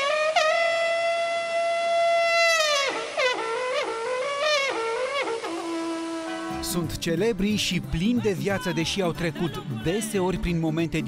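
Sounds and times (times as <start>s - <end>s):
folk horn notes: 0.0s - 7.1s.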